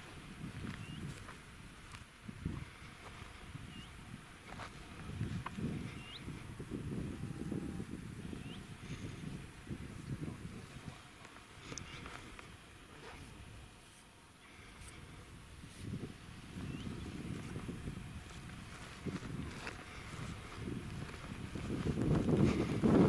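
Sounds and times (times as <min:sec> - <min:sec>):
wind gusting on microphone: 0:00.0 - 0:13.8, 0:14.5 - 0:23.0
faint high chirps: 0:00.7 - 0:01.2, 0:03.6 - 0:04.0.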